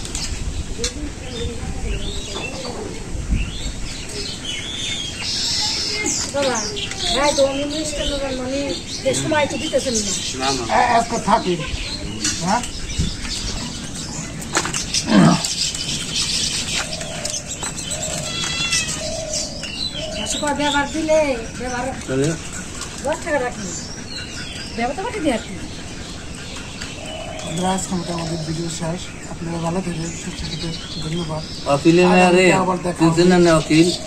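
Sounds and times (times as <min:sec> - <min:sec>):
small birds chirping: 0:00.0 - 0:34.0
dove cooing: 0:05.7 - 0:29.2
cat meowing: 0:18.2 - 0:19.1.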